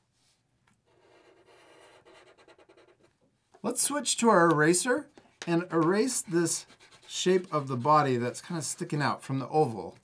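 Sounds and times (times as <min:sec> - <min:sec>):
marker drawing on paper: 0:00.8 - 0:03.2, 0:05.4 - 0:08.2.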